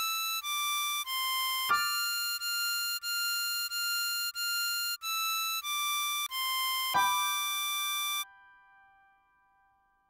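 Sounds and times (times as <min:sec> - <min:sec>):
harmonica high notes: 0:00.0 - 0:08.9.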